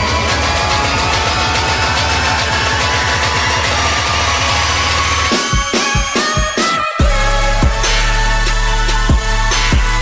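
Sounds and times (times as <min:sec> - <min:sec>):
electronic dance music: 0:00.0 - 0:10.0.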